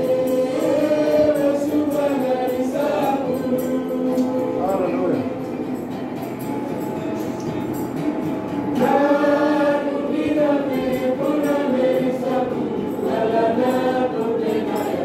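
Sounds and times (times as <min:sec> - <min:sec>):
youth choir singing: 0:00.0 - 0:04.7, 0:08.7 - 0:15.0.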